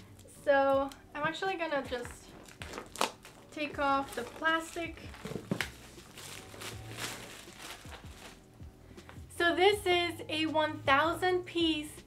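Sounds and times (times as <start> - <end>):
plastic shrink wrap crinkling: 1.9 - 8.5.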